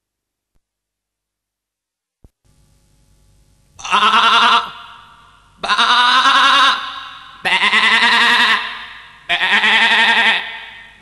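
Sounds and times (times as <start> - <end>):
sheep bleating: 3.8 - 11.0.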